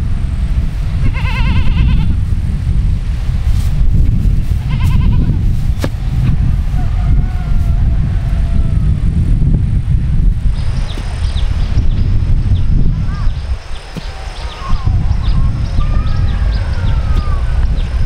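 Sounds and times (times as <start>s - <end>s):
wind rumble on microphone: 0.0s - 18.0s
animal bleating: 1.0s - 2.2s, 4.6s - 5.4s.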